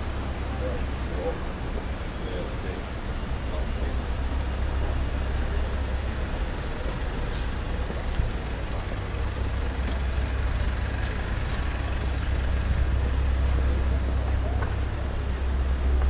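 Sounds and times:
road traffic rumble: 0:00.0 - 0:16.0.

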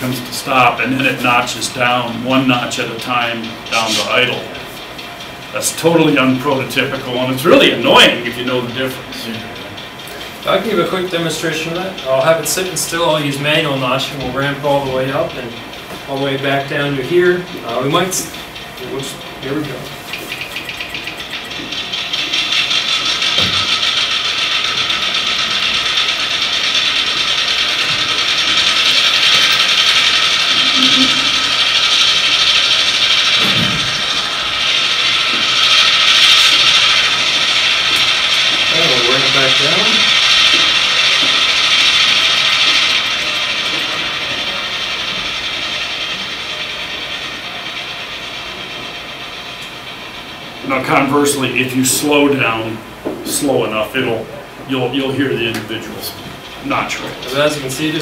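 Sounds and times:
model diesel locomotive engine: 0:00.0 - 0:58.0.

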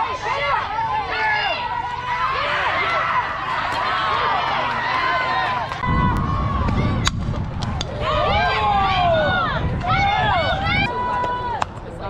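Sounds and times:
people shouting: 0:00.0 - 0:07.1, 0:07.7 - 0:11.6
low rumble: 0:05.6 - 0:11.0.

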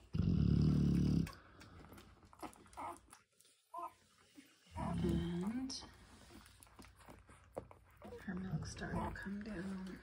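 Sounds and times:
dog growling low: 0:00.0 - 0:01.6.

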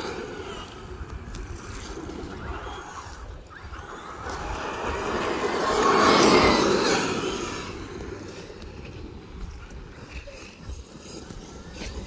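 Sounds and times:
rc truck motor whine: 0:00.0 - 0:08.5
tyre noise on pavement: 0:00.0 - 0:12.0.

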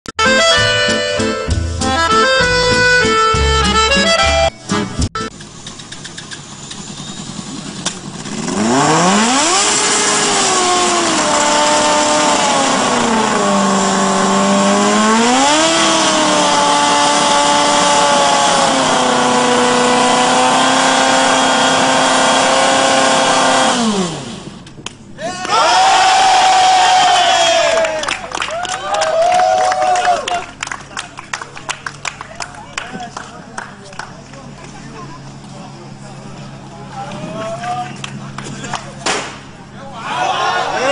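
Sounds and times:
race car engine revving: 0:06.4 - 0:24.6.

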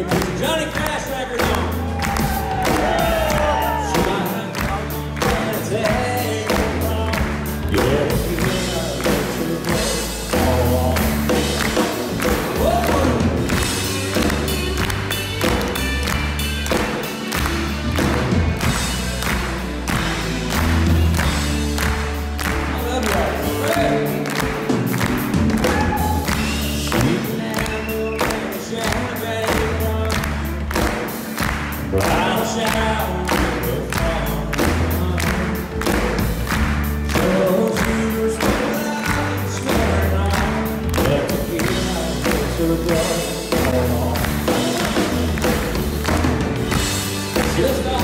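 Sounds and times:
audience clapping along: 0:00.0 - 0:48.0
bass: 0:00.0 - 0:48.0
country band playing: 0:00.0 - 0:48.0
guitars: 0:00.0 - 0:48.0
lead singer: 0:00.0 - 0:48.0
steady drum beat: 0:00.0 - 0:48.0.

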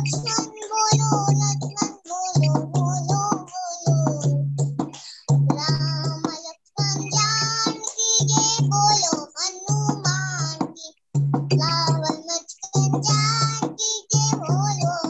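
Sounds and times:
girl singing: 0:00.0 - 0:15.0.

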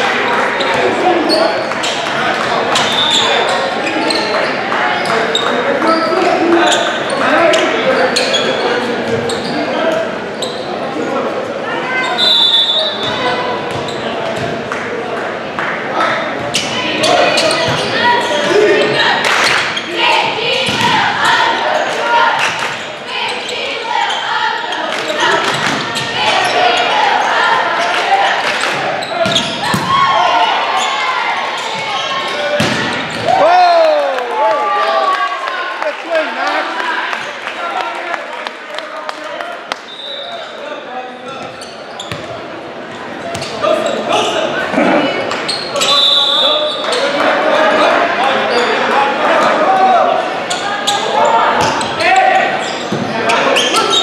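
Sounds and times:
referee's whistle: 0:02.8 - 0:03.4, 0:12.0 - 0:13.2, 0:39.8 - 0:40.5, 0:45.6 - 0:46.9
people shouting and cheering: 0:15.9 - 0:41.0, 0:43.6 - 0:54.0.

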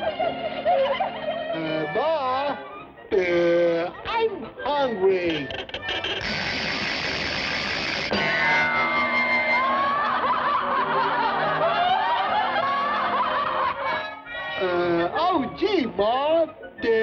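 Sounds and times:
cartoon orchestral music: 0:05.0 - 0:15.2.

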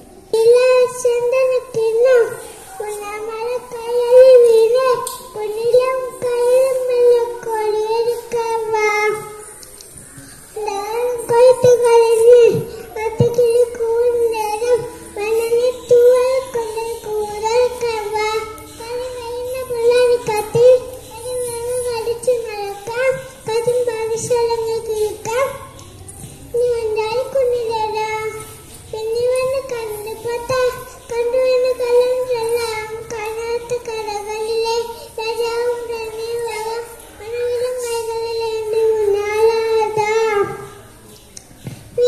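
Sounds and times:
boy singing into microphone: 0:00.4 - 0:40.8.

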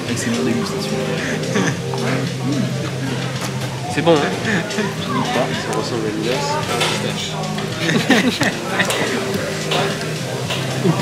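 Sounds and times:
background music with low note: 0:00.0 - 0:11.0
voices: 0:00.0 - 0:11.0.

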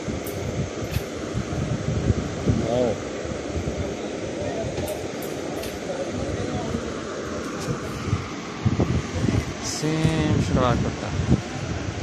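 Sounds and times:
faint voices talking: 0:02.6 - 0:12.0.

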